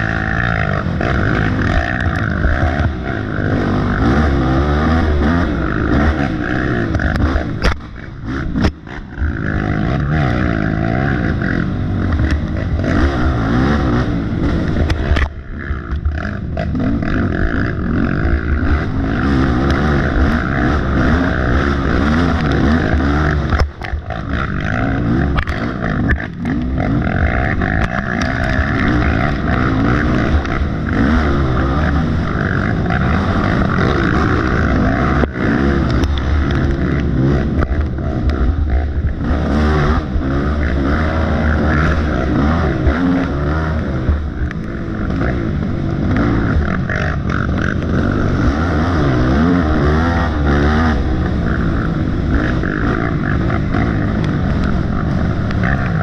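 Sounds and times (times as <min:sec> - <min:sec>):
atv engine revving: 0:00.0 - 0:56.0.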